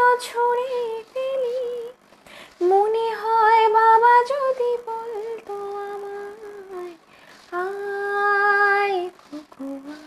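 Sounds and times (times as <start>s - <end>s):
woman singing wordless notes: 2.6s - 10.0s.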